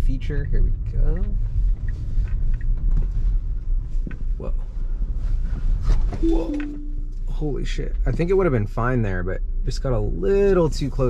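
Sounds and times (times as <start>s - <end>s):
road and tyre rumble: 0.0s - 6.2s.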